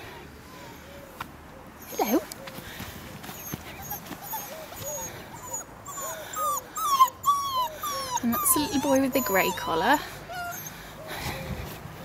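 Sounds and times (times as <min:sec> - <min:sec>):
puppy whimpering: 0:01.8 - 0:02.3, 0:03.3 - 0:11.5.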